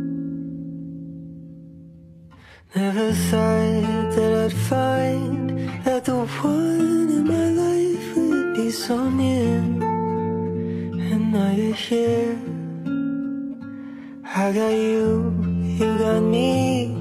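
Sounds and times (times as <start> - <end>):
acoustic guitar: 0.0 - 17.0.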